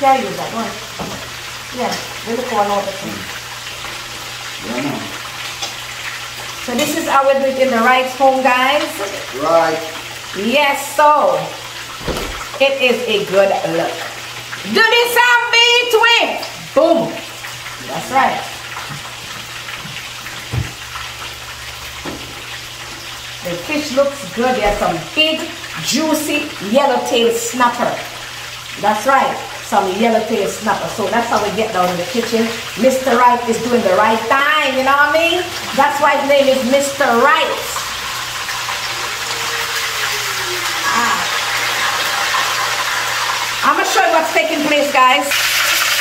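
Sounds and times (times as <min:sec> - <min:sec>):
fish frying in oil: 0:00.0 - 0:46.0
soft thump: 0:12.0 - 0:12.5.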